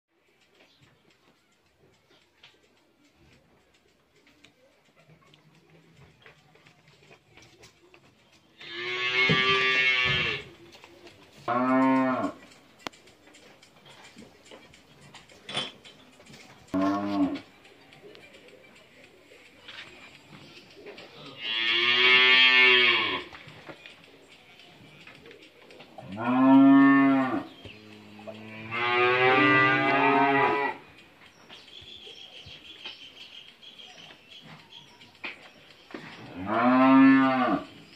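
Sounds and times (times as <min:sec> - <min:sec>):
cow mooing: 0:08.6 - 0:10.5, 0:11.5 - 0:12.4, 0:16.8 - 0:17.4, 0:21.4 - 0:23.3, 0:26.1 - 0:30.8, 0:36.3 - 0:37.7.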